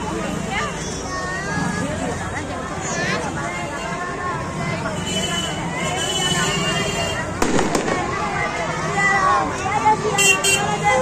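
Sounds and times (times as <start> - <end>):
street crowd chatter: 0.0 - 11.0
firecrackers banging: 7.3 - 9.2.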